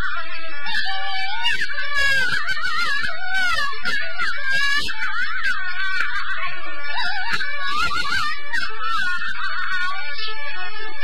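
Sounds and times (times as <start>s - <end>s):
chinese opera melody: 0.0s - 11.0s.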